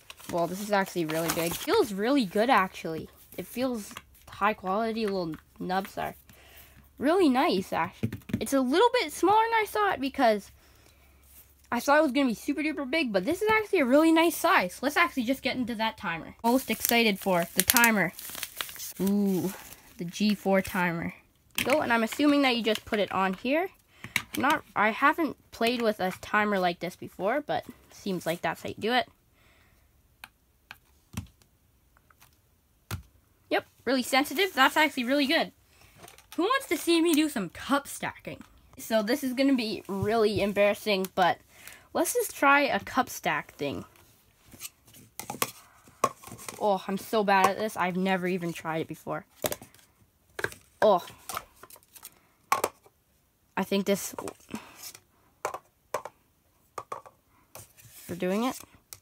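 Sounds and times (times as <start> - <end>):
plastic cups clacking: 50.4 - 51.7, 52.5 - 52.9, 55.4 - 56.2, 56.8 - 57.2.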